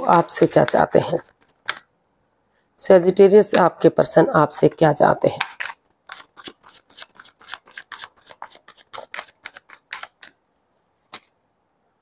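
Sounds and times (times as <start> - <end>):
cards being shuffled: 5.4 - 10.4.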